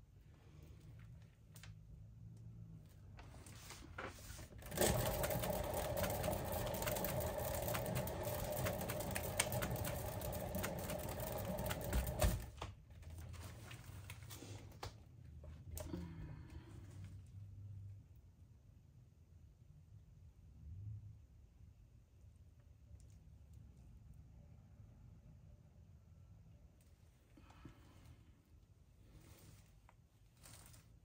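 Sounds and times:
spinner whirring and rattling: 4.3 - 12.6.

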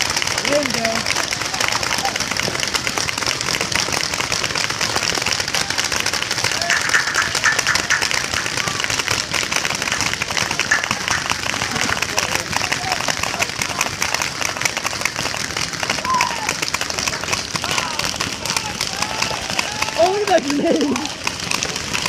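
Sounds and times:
paintball markers firing: 0.0 - 14.0, 16.5 - 22.0.

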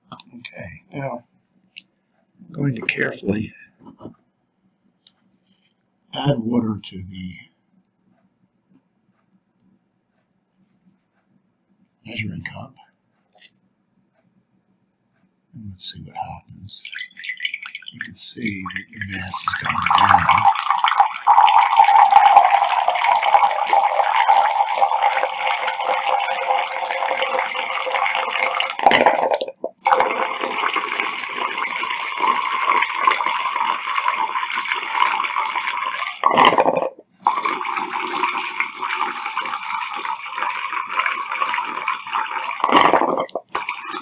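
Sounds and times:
water pouring into glass cup: 16.2 - 44.0.

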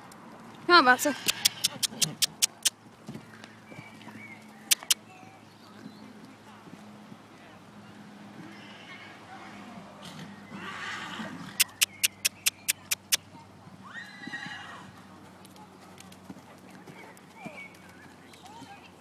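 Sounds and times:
horse whinnying: 1.0 - 2.7, 10.1 - 11.8, 13.9 - 14.9
sharp loud clicks: 1.2 - 2.7, 4.7 - 5.0.

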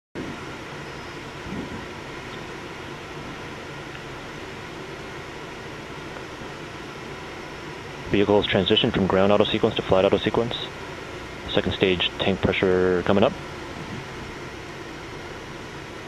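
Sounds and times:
steady rushing noise: 0.2 - 15.3
low hum: 0.2 - 16.0.

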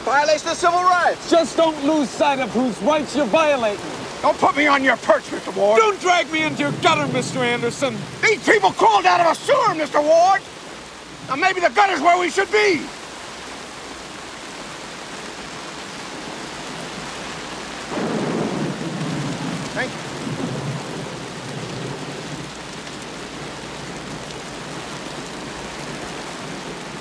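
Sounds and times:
steady rain: 0.0 - 27.0
low thunder roll: 2.9 - 9.4, 17.9 - 24.9.

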